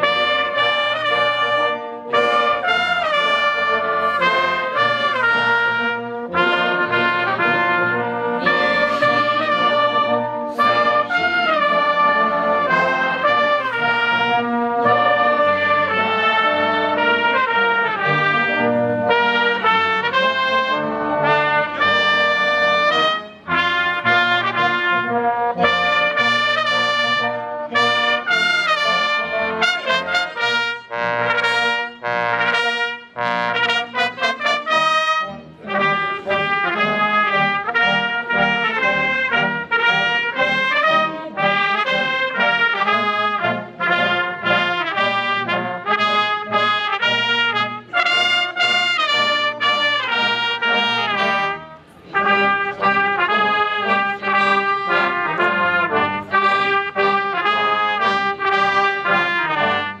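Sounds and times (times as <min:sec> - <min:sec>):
brass band playing solemn piece: 0:00.0 - 1:00.0.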